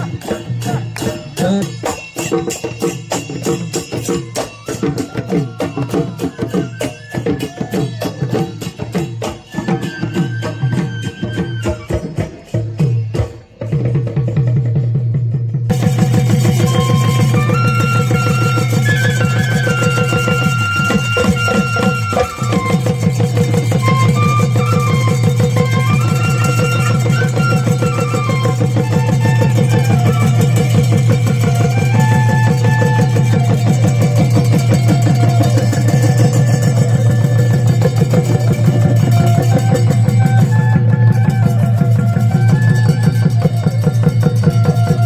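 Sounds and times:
bamboo flute folk melody: 0.0s - 45.0s
fast steady drumbeat: 0.0s - 45.0s
small hand cymbals: 0.0s - 45.0s.

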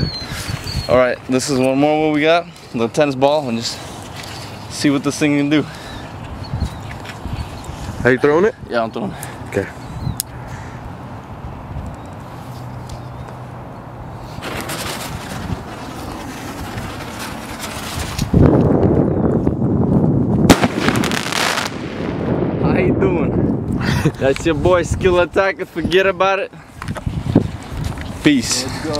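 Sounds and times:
firework sparks crackling: 14.4s - 18.4s, 20.5s - 22.1s
sharp firework bang: 20.5s - 22.9s.

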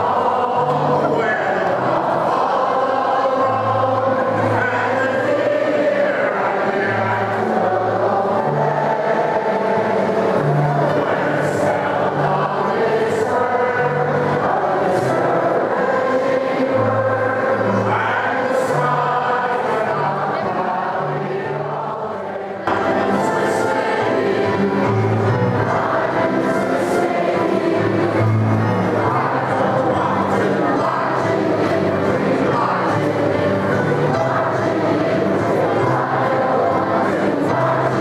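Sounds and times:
crowd singing: 0.0s - 38.0s
concert band playing: 22.3s - 38.0s.

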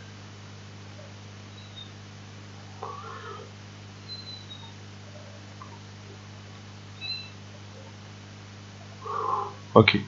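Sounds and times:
cat meowing: 2.8s - 3.5s.

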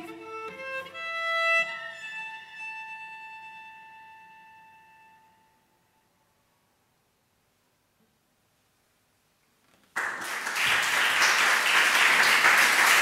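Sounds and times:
bowed cello: 0.0s - 6.0s.

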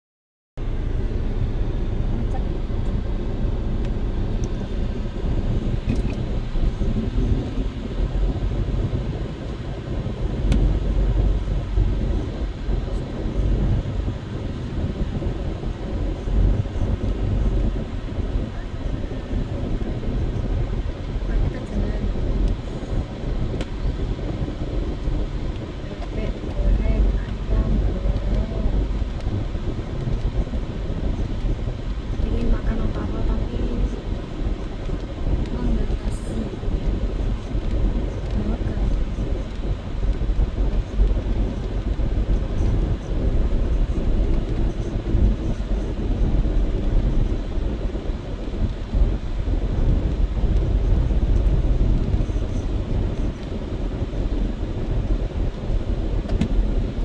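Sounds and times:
car engine and road rumble: 0.6s - 57.0s.

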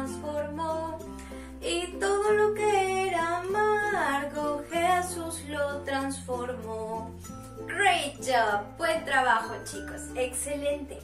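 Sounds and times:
guitar accompaniment: 0.0s - 11.0s
woman singing: 0.0s - 11.0s.

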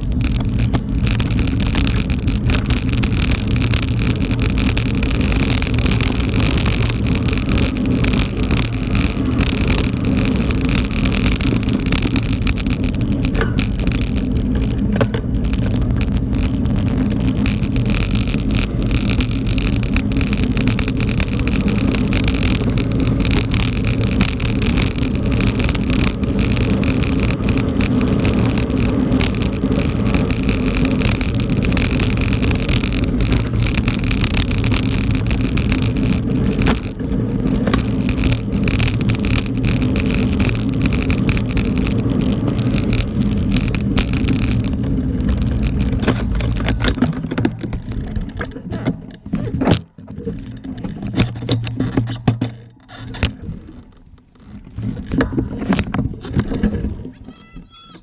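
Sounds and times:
bike rattles and knocks: 0.0s - 58.0s
bike tyres rumbling on dirt: 0.0s - 58.0s.

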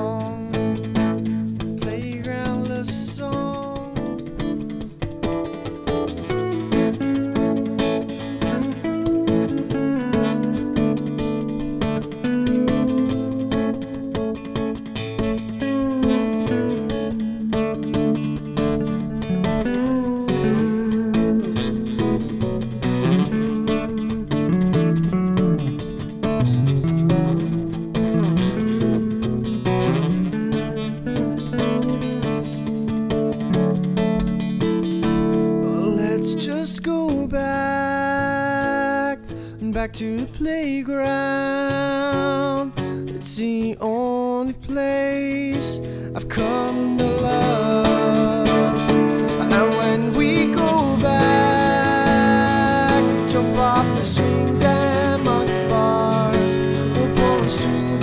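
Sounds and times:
acoustic guitar strumming chords: 0.0s - 58.0s
electric guitar lead melody: 0.0s - 58.0s.

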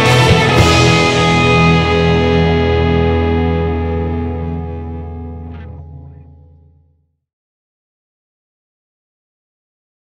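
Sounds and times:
distorted electric guitar chord: 0.0s - 7.0s
low bass note: 0.0s - 7.0s.

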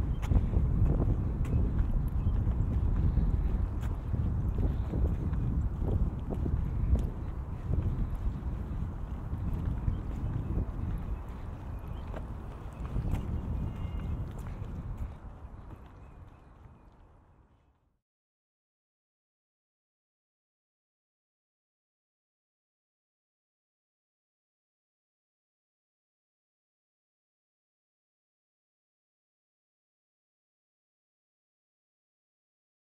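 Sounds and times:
wind buffeting microphone: 0.0s - 17.7s.

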